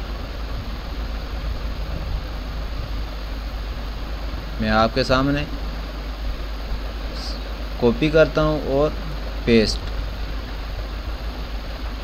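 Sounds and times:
background hiss: 0.0s - 12.0s
low hum: 0.0s - 12.0s.

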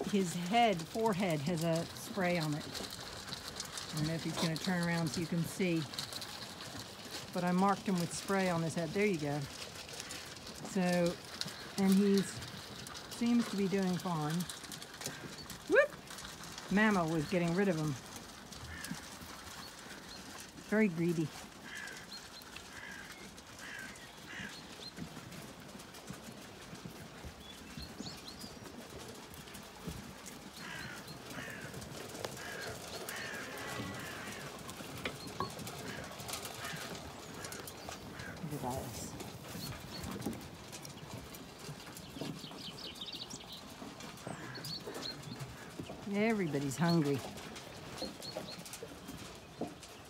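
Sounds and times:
hooves knocking and shuffling: 0.0s - 50.0s
sheep eating at a trough: 0.0s - 50.0s
small birds chirping: 8.9s - 50.0s.

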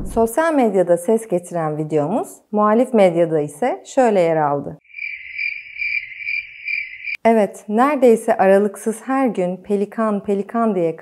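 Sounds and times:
cricket chirping: 4.8s - 7.2s.

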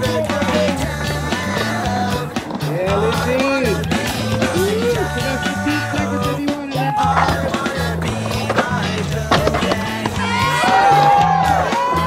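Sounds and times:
rock music: 0.0s - 12.0s
skateboard wheels rolling: 0.0s - 12.0s
skateboard clacks: 7.0s - 11.3s.

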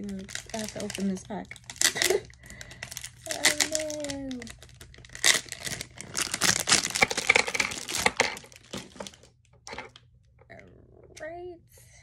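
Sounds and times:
plastic packaging crinkling and tearing: 0.0s - 10.0s.

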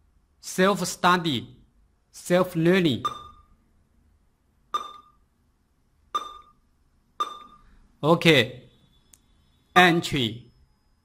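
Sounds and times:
keypad beeps: 3.0s - 3.5s, 4.8s - 5.2s, 6.2s - 6.6s, 7.2s - 7.7s.

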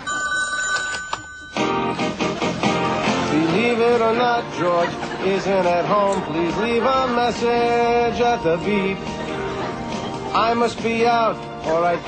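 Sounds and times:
telephone two-tone ring: 0.0s - 1.9s.

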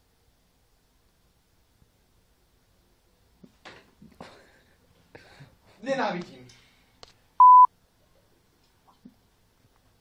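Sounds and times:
censor bleep: 7.4s - 7.7s.

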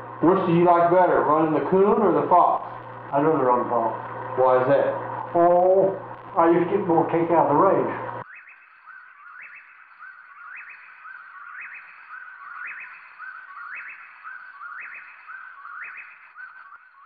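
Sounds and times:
whistled call with upward sweep: 8.2s - 17.0s.

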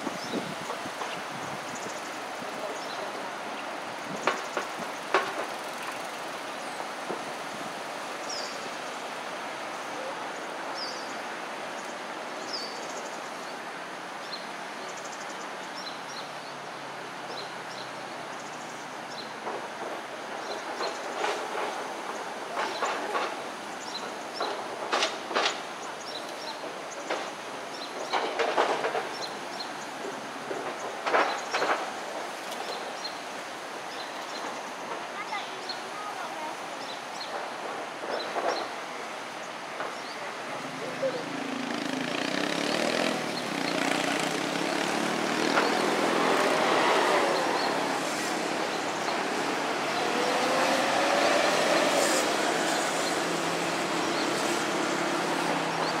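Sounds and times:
flowing water: 0.0s - 56.0s.

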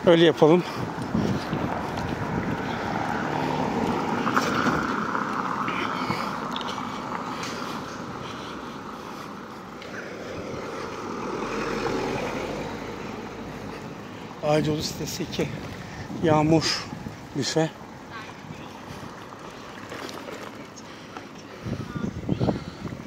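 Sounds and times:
wind on microphone: 0.8s - 5.1s, 14.6s - 17.4s, 21.5s - 23.0s
tyre rumble over paving stones: 19.2s - 21.4s.

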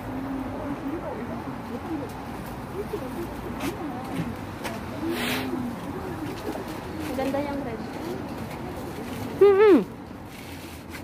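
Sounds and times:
rustle: 1.9s - 11.0s.

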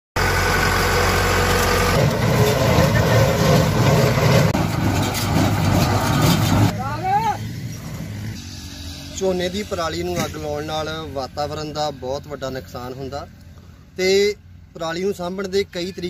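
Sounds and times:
square baler working: 0.2s - 6.8s
tractor engine running: 0.2s - 7.0s.

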